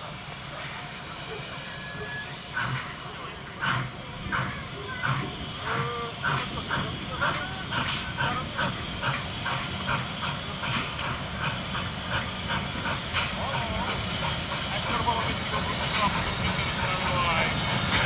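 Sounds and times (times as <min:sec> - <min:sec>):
steady hiss of steam: 0:00.0 - 0:18.0
steam locomotive chuffing: 0:00.0 - 0:18.0.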